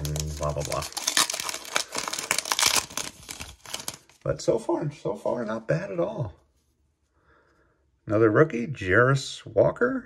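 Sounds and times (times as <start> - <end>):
foil wrapper crinkling and tearing: 0.0 - 4.2.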